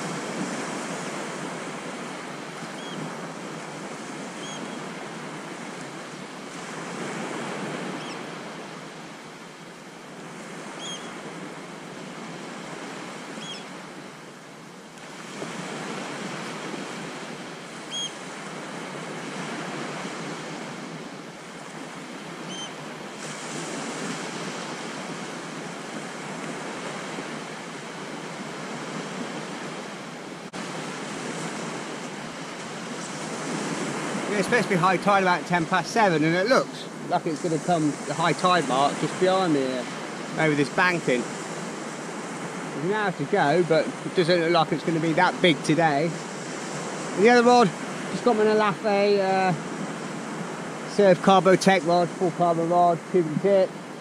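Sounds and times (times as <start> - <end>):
waves breaking on a beach: 0.0 - 54.0.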